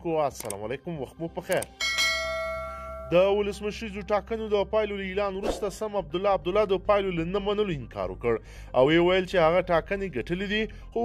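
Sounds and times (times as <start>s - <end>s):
bell chime ringing: 1.8s - 3.4s.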